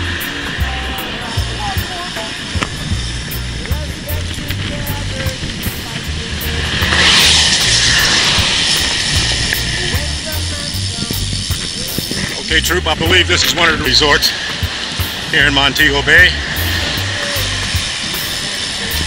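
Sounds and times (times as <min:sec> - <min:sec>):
rushing hiss: 0:00.0 - 0:19.0
wind buffeting microphone: 0:00.0 - 0:19.0.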